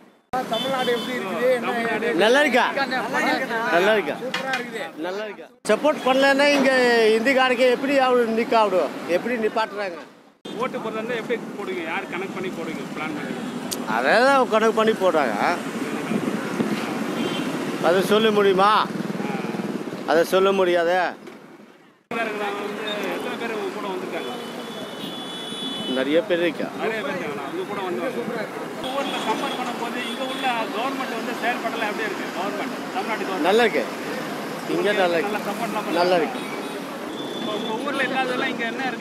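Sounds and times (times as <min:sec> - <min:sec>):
road traffic passing: 0:00.0 - 0:39.0.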